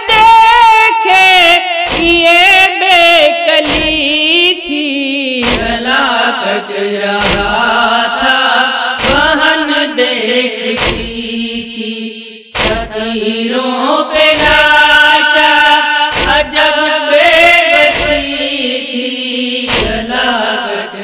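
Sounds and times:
person chanting a lament: 0.0s - 21.0s
regular thuds: 1.9s - 2.2s, 3.6s - 4.1s, 5.4s - 5.9s, 7.2s - 7.6s, 9.0s - 9.4s, 10.8s - 11.3s, 12.6s - 13.0s, 14.4s - 14.8s, 16.1s - 16.6s, 19.7s - 20.1s.

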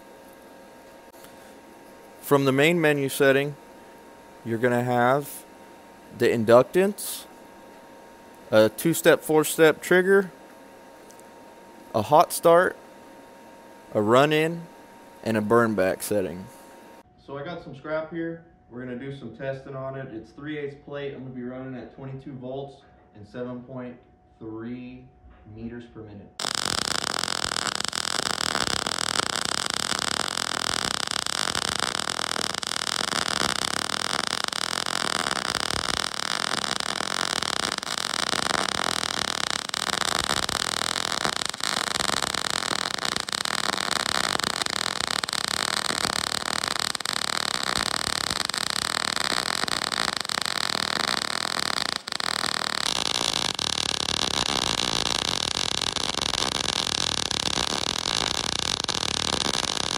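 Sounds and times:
welding arc crackling: 0.0s - 10.3s, 10.9s - 12.8s, 13.6s - 17.0s, 26.4s - 59.9s.

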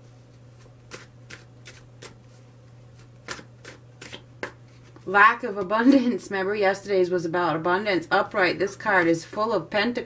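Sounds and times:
cards slapping while shuffled: 0.3s - 5.1s.

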